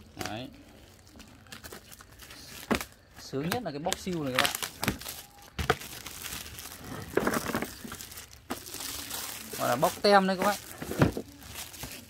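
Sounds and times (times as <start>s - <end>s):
plastic shrink wrap crinkling: 0.0s - 12.0s
sharp plastic crackle: 0.0s - 12.0s.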